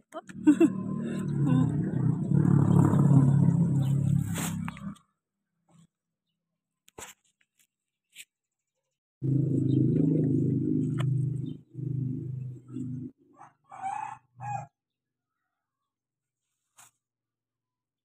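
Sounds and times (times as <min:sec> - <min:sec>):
rooster crowing: 0:13.4 - 0:14.7.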